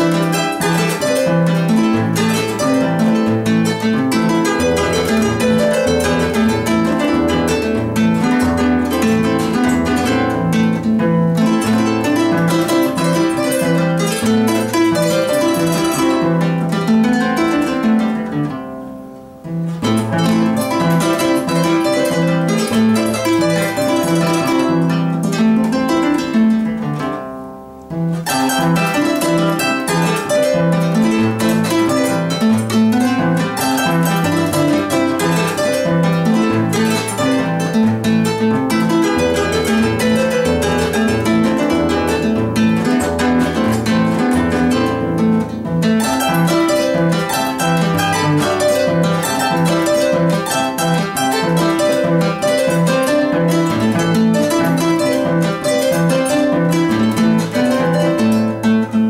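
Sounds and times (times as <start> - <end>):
solo harp melody: 0.0 - 59.0.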